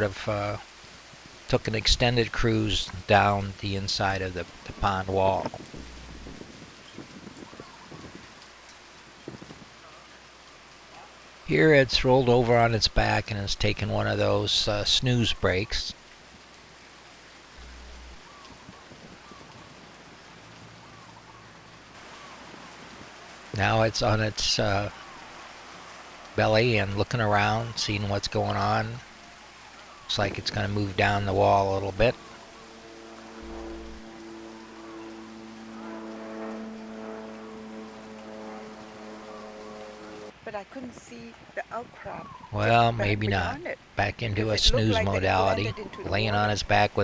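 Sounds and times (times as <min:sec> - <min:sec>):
distant surf hiss: 0:00.0 - 0:41.3
low rumble: 0:05.4 - 0:06.8, 0:17.5 - 0:18.4, 0:30.1 - 0:40.4
soft sustained chord: 0:17.6 - 0:18.5, 0:28.5 - 0:40.4.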